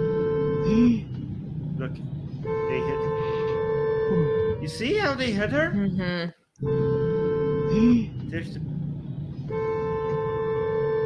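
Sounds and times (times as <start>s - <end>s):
car horn long honk: 0.0s - 0.8s, 2.4s - 5.2s, 6.6s - 8.1s, 9.5s - 11.0s
street noise: 0.0s - 11.0s.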